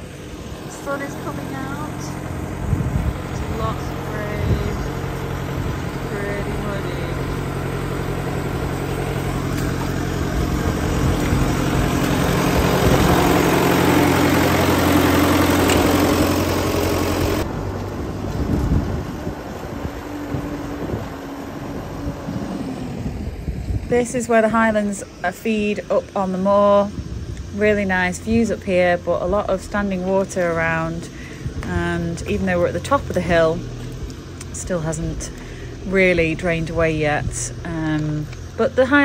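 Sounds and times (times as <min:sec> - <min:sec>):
tractor diesel engine running: 0:00.0 - 0:39.0
uneven outdoor noise: 0:00.0 - 0:39.0.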